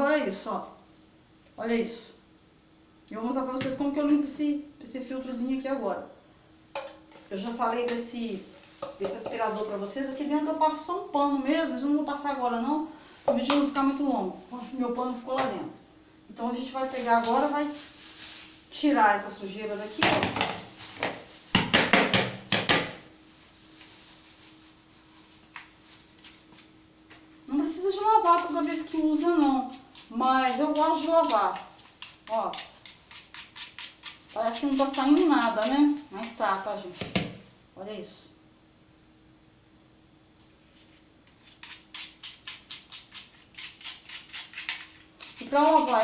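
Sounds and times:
plastic bag crinkling: 16.7 - 18.8, 23.2 - 26.7
brush scrubbing a filter: 27.5 - 37.0, 41.4 - 46.0.

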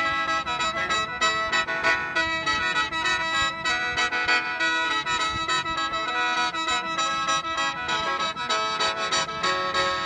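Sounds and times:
mouth organ with drone: 0.0 - 10.0.

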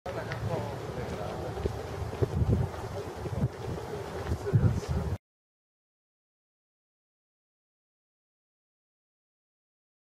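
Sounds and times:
wind buffeting microphone: 0.1 - 5.2.

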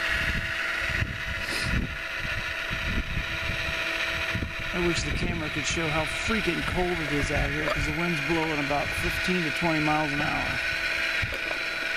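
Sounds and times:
wind rumbling on microphone: 0.0 - 9.3
electric motor and hydraulic whine: 0.0 - 11.9.

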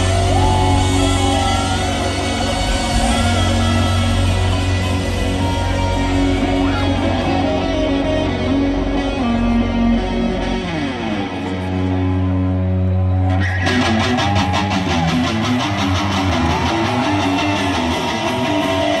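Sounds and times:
drums: 0.0 - 12.4, 13.1 - 19.0
distorted electric guitar riff: 0.0 - 19.0
live rock band playing: 0.0 - 19.0.

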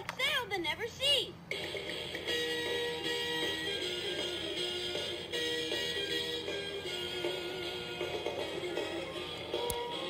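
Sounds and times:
toy playing a jingle: 2.2 - 9.3.

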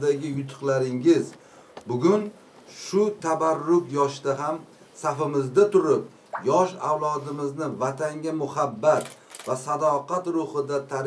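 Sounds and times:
man speaking: 1.9 - 11.0
short sharp high-pitched sounds: 6.4 - 6.6.

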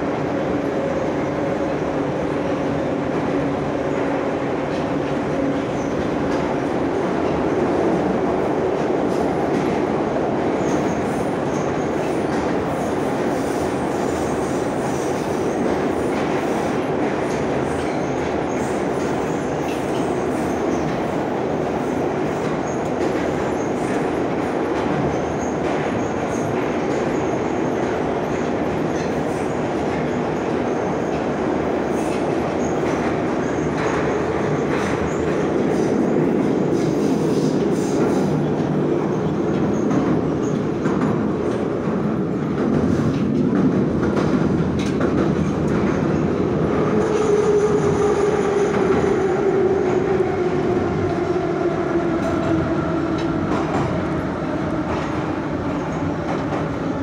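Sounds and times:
metro wheels rumbling on rails: 0.0 - 57.0.

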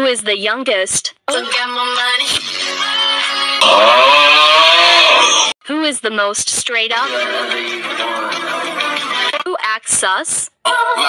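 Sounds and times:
distorted meme sound effect: 3.6 - 5.5.

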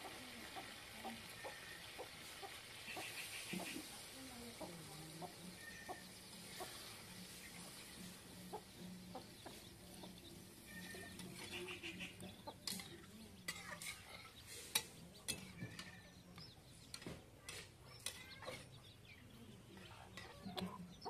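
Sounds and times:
metal spatula scraping a wok: 12.6 - 16.0.

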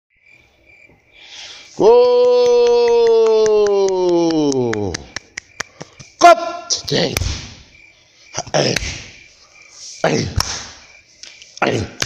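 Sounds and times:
night insects chirping: 0.1 - 12.0.

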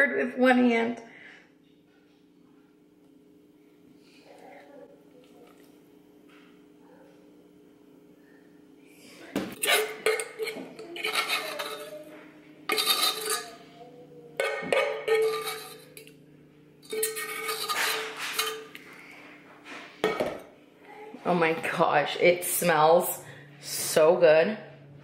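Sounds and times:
metal utensil scraping saucepan: 9.6 - 16.2, 16.8 - 18.9.

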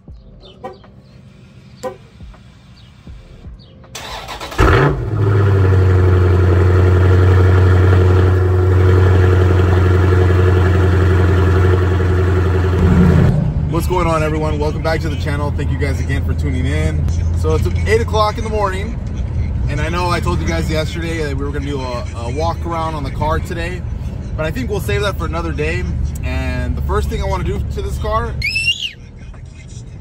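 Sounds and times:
car engine starting and idling: 0.5 - 30.0.

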